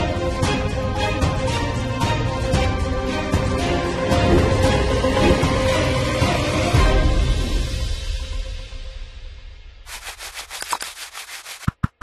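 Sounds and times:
scratchy rattling texture: 0:09.9 - 0:12.0.

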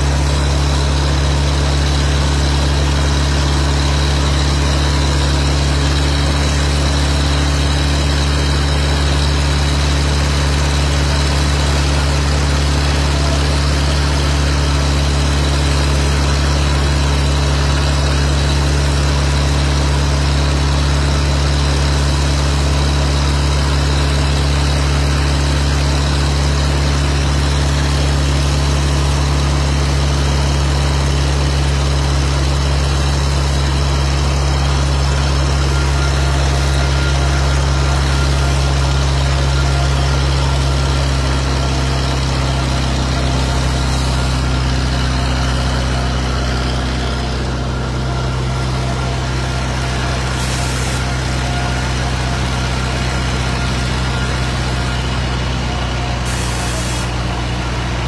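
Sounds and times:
large engine droning: 0:00.0 - 0:58.0.

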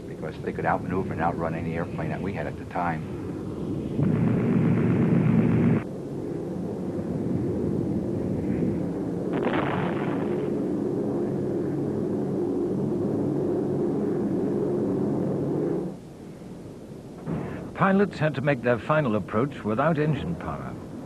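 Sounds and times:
aircraft engines droning: 0:00.0 - 0:09.4, 0:10.1 - 0:21.0
sharp explosive burst: 0:04.0 - 0:05.8, 0:09.3 - 0:10.9, 0:17.2 - 0:17.8.

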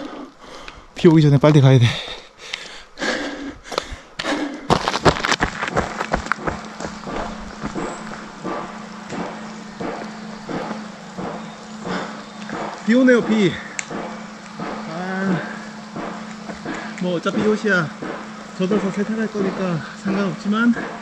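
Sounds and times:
running footsteps and bumps: 0:01.0 - 0:21.0.

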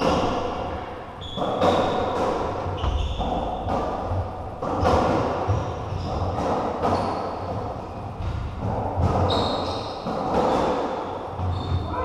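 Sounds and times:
shoes squeaking on wooden floor: 0:01.2 - 0:04.0, 0:09.2 - 0:10.7, 0:11.3 - 0:12.0.

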